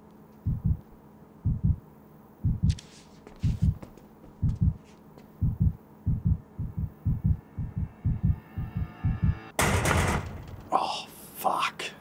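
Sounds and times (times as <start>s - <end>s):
heartbeat thumps: 0.4s - 1.8s, 2.4s - 2.8s, 3.4s - 9.5s
faint hum with rising tone: 0.4s - 2.8s, 4.4s - 9.6s.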